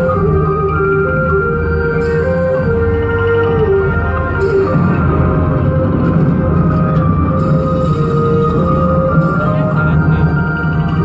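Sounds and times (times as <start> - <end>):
loud instrumental music over pa: 0.0 - 11.0.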